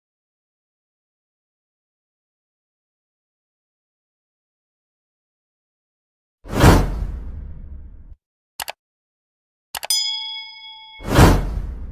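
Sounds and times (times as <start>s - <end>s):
notification bell ding: 9.8s - 11.5s.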